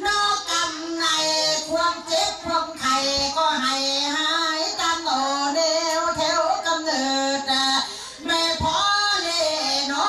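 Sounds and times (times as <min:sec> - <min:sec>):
person singing folk song: 0:00.0 - 0:10.0.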